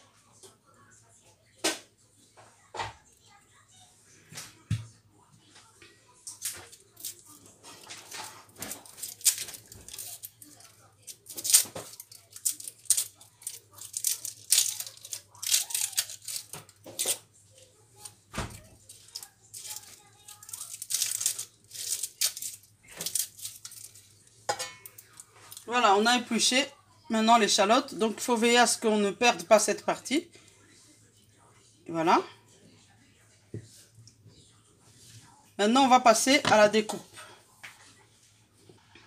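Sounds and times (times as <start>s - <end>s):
shallot skins crackling: 6.4s - 17.3s, 18.9s - 24.2s.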